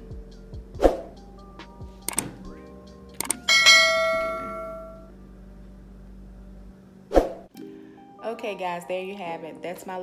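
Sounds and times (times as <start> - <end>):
quiet background music: 0.0 - 10.0
mouse clicks: 2.1 - 2.3, 3.2 - 3.4
notification bell ding: 3.5 - 5.1.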